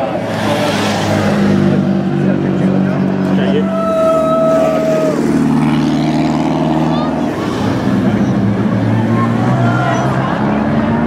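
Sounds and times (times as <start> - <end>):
car engines driving off: 0.0 - 11.0
crowd talking: 0.0 - 11.0.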